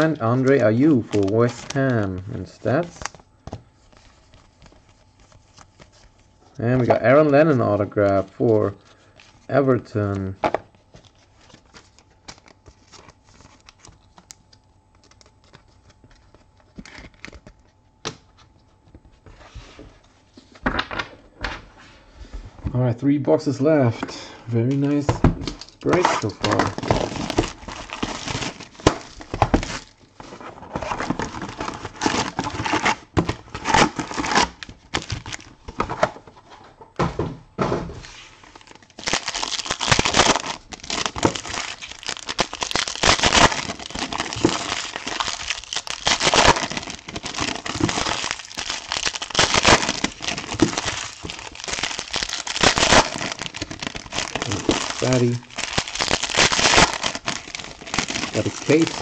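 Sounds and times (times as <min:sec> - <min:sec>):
foil wrappers tearing and crinkling: 0:00.0 - 0:03.2, 0:15.0 - 0:17.7, 0:24.8 - 0:30.0, 0:30.7 - 0:35.5, 0:38.3 - 0:59.0.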